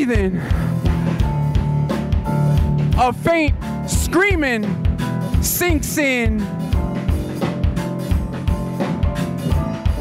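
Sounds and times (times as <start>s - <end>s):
drum beat: 0.0s - 10.0s.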